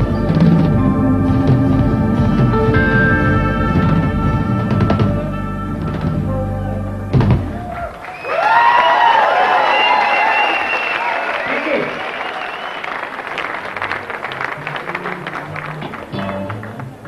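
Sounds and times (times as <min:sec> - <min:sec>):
audience cheering and shouting: 0:07.2 - 0:12.8
applause: 0:07.7 - 0:17.0.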